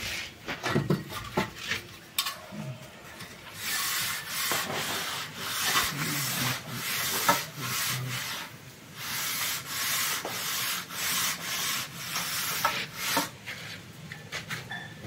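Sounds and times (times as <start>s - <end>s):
straight edge scraping wet plaster: 3.6s - 13.8s.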